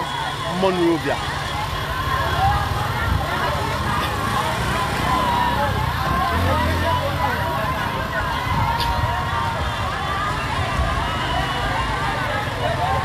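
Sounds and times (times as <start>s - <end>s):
crowd talking and calling out: 0.0s - 13.0s.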